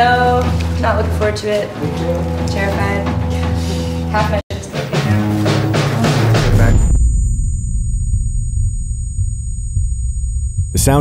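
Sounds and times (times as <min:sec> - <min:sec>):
high-pitched ringing: 0:06.1 - 0:11.0
muffled low rumble: 0:06.2 - 0:11.0.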